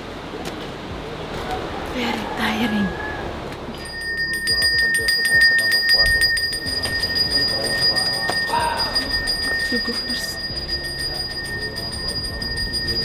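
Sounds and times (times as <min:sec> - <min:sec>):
voices: 0:00.0 - 0:13.0
hand bell ringing rapidly: 0:03.8 - 0:13.0.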